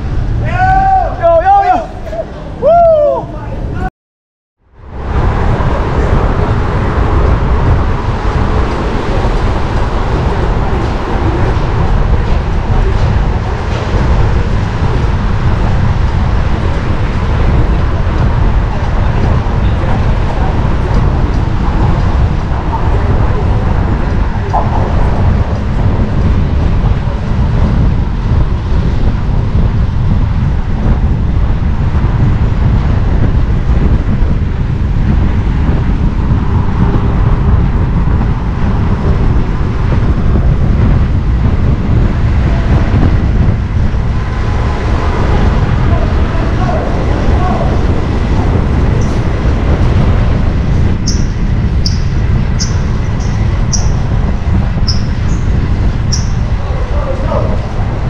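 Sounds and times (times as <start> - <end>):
low traffic rumble: 0.0 - 3.9, 4.6 - 58.0
wind rush on microphone: 0.0 - 3.9, 4.6 - 58.0
short high-pitched chirps: 51.1 - 54.0.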